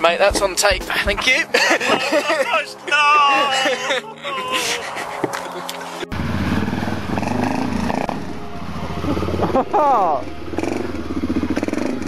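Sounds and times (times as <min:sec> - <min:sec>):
motorcycle engine running: 0:06.1 - 0:12.0.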